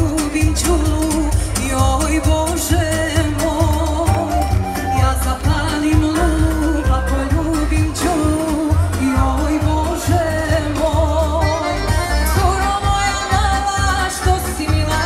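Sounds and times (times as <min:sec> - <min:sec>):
deep bass beat: 0:00.0 - 0:15.0
live band music over pa: 0:00.0 - 0:15.0
person singing with vibrato: 0:00.0 - 0:15.0.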